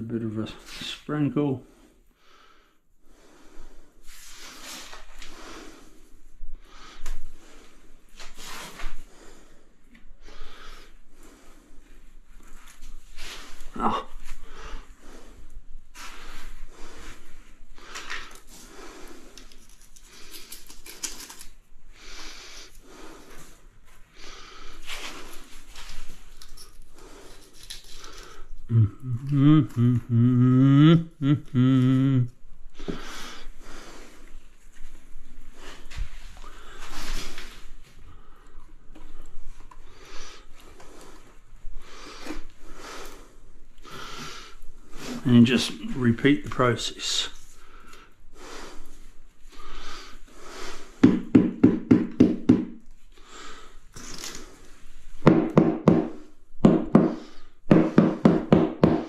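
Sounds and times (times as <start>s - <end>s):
man humming: 28.7s - 32.4s.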